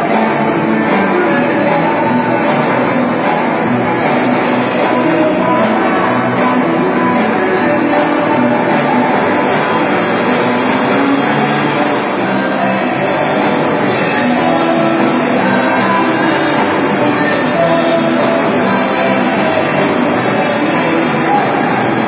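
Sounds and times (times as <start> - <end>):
live rock band playing: 0.0 - 22.0.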